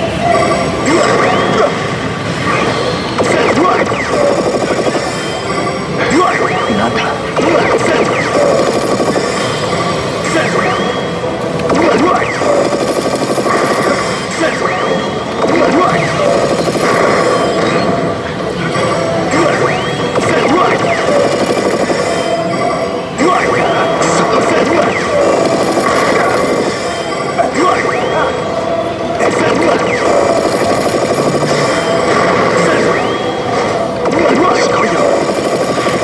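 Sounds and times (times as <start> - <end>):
slot machine game music: 2.7 - 36.0.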